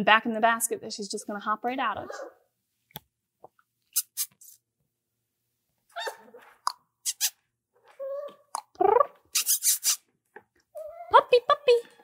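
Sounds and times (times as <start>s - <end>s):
puppy squeaking and whimpering: 6.0s - 6.5s, 8.0s - 10.0s.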